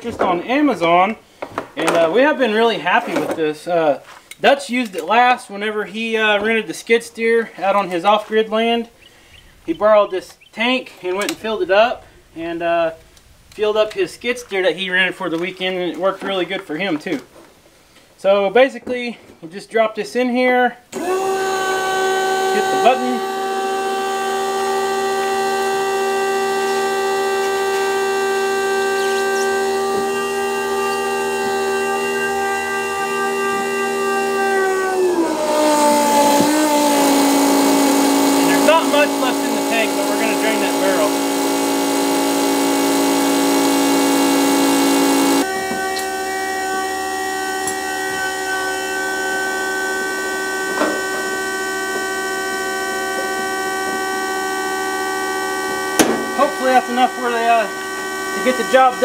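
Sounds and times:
electric pump whining: 20.9 - 59.0.

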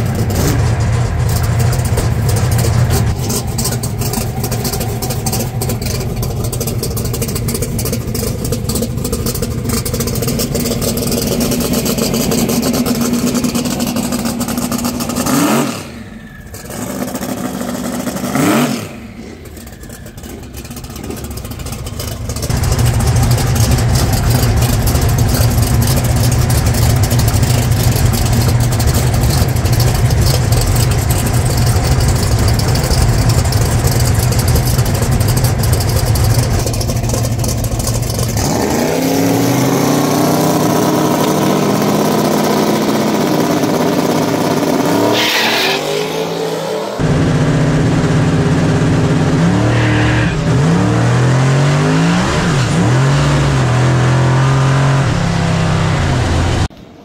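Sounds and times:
race car engine revving: 0.0 - 56.7.

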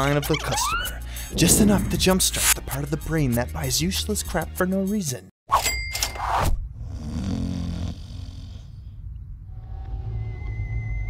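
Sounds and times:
man snoring: 6.8 - 8.8.

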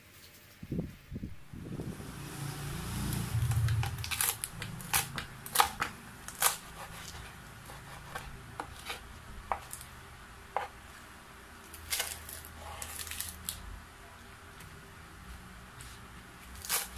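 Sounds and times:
low rumble: 0.8 - 5.3
knife chopping on wooden board: 3.8 - 9.8.

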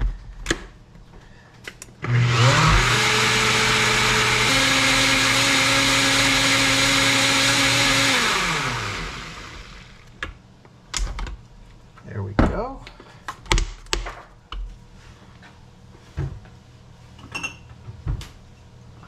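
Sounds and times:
blender motor running: 2.0 - 10.1.

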